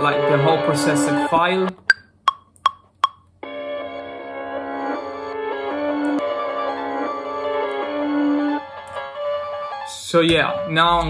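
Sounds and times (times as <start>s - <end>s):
metronome woodblock clicks: 1.8s - 3.3s.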